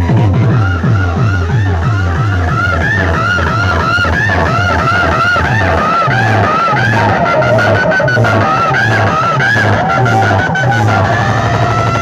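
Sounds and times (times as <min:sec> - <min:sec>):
loud dance music over loudspeakers: 0:00.0 - 0:12.0.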